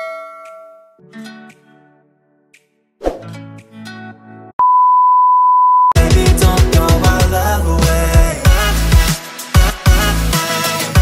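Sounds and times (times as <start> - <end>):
high-pitched beep: 4.6 - 6.0
beat-driven music: 6.0 - 11.0.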